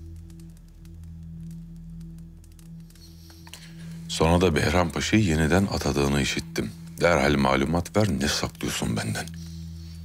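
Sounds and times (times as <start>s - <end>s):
low dramatic music drone: 0.0s - 10.0s.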